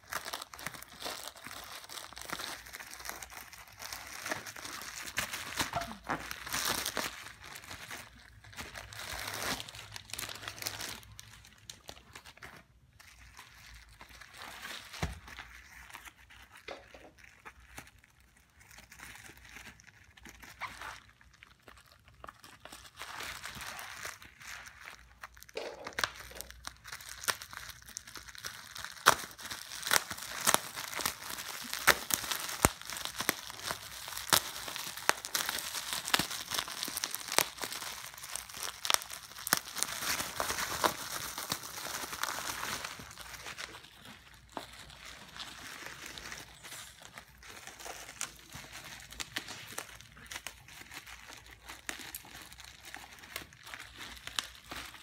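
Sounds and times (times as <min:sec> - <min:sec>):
bubble wrap crinkling: 0:00.0 - 0:55.0.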